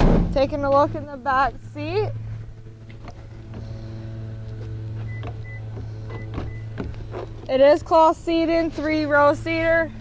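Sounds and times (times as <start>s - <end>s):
steady low hum: 0.0s - 10.0s
footsteps on pavement: 2.1s - 10.0s.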